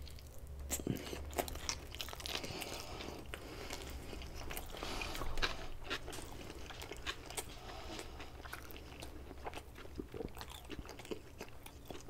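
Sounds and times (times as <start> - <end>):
chewing food: 0.0 - 12.0.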